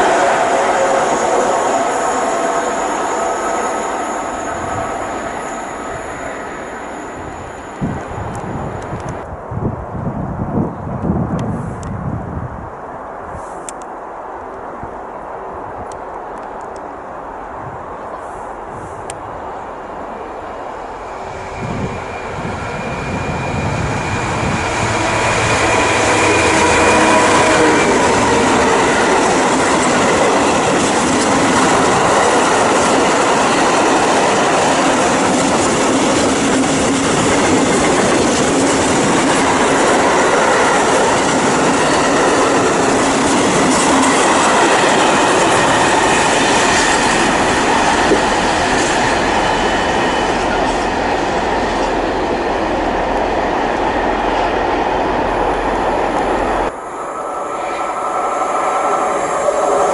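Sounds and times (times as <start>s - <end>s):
diesel locomotive engine: 0.0s - 9.5s, 15.9s - 59.9s.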